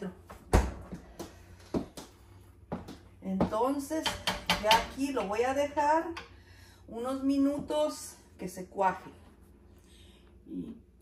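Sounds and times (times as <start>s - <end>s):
kitchen objects knocking and clicking: 3.4s - 5.4s.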